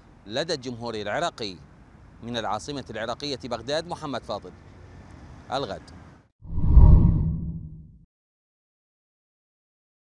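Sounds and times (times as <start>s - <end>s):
low whoosh sound effect: 6.4s - 8.0s.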